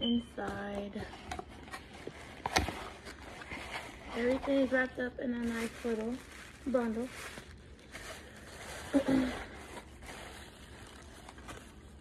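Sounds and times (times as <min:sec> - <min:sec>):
wrapping paper rustling: 0:00.5 - 0:12.0.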